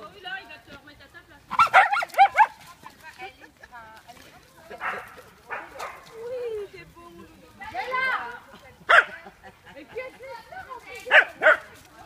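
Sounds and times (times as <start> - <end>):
dog yipping: 1.5 - 2.6
dogs scuffling: 1.5 - 7.2.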